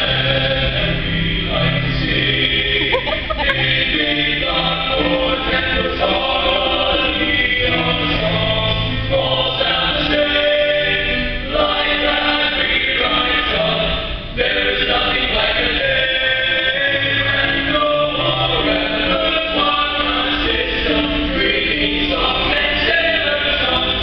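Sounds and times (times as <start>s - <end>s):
male vocal ensemble singing harmony: 0.0s - 24.0s.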